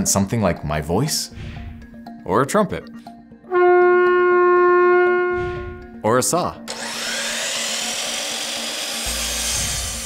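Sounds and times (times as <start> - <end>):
miter saw cutting wood: 6.7 - 10.0.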